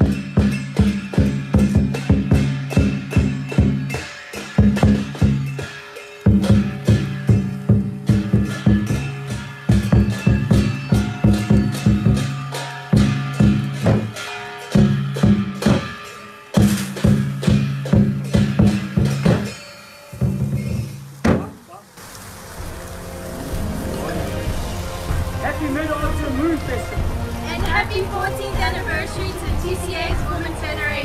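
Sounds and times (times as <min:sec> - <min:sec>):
big drum beaten quickly: 0:00.0 - 0:05.6, 0:06.3 - 0:19.6
cymbal clashes: 0:00.0 - 0:21.4.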